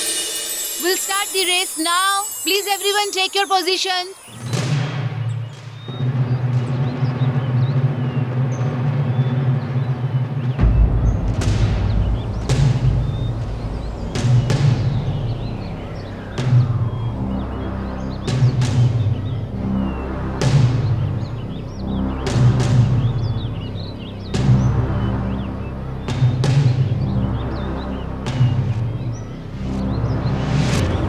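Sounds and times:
sharp percussive hits: 0.0s - 2.6s, 4.2s - 9.8s, 10.4s - 17.2s
deep bass layer: 6.0s - 31.0s
low drone: 6.4s - 31.0s.

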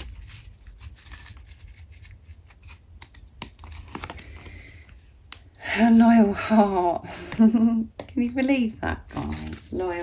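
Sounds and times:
cards flicking and clicking: 2.6s - 4.5s.

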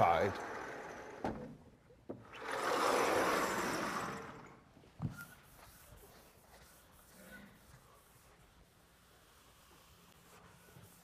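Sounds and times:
rubbing swish on blackboard: 5.2s - 11.0s.

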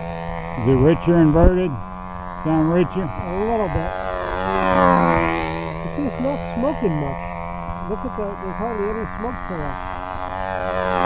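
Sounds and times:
model airplane engine buzzing: 0.0s - 11.0s.

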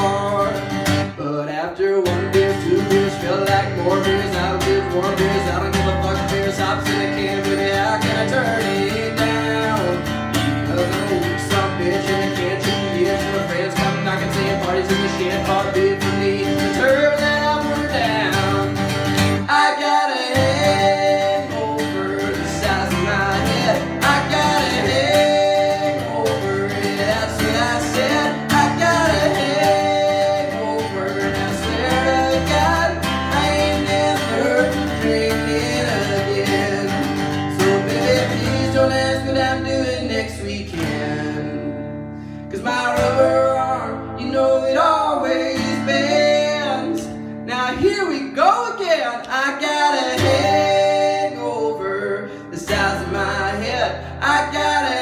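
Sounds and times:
bass: 0.0s - 1.2s, 2.0s - 19.6s, 20.3s - 55.0s
acoustic guitar strumming: 0.0s - 55.0s
man singing: 0.0s - 55.0s.

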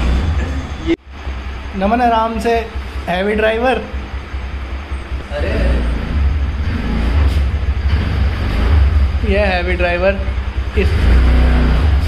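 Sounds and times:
motor scooter engine: 0.0s - 1.5s.

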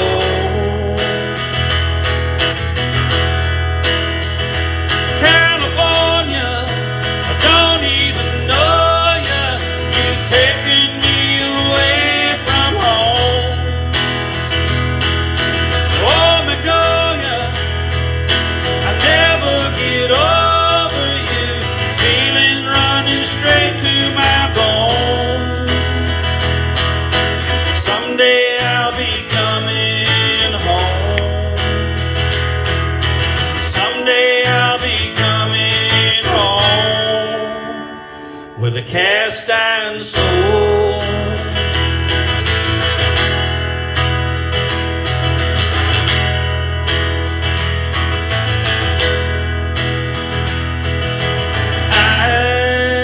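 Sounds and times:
acoustic guitar strummed: 0.0s - 53.0s
wordless singing: 5.2s - 13.6s, 16.0s - 17.6s, 18.8s - 25.7s, 51.9s - 53.0s.

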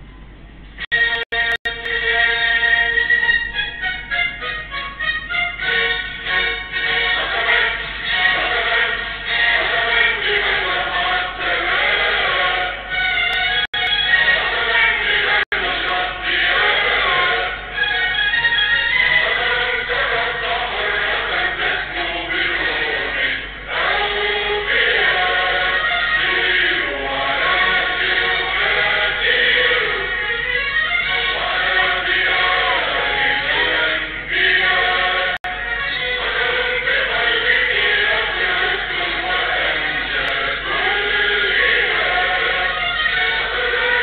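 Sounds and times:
young voices singing in chorus: 19.2s - 30.3s, 31.1s - 35.5s, 36.2s - 44.0s.

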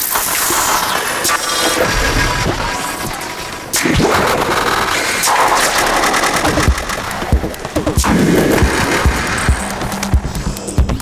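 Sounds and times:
glitchy noisy synth textures: 0.0s - 11.0s
steady low drone: 1.3s - 11.0s.

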